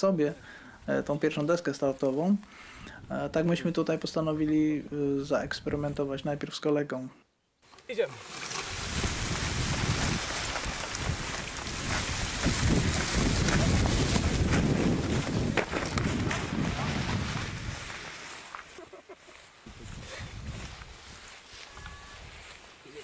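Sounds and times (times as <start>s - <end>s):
wheels rumbling over grass: 8.0s - 18.8s
wind buffeting microphone: 8.7s - 18.1s, 19.6s - 21.2s.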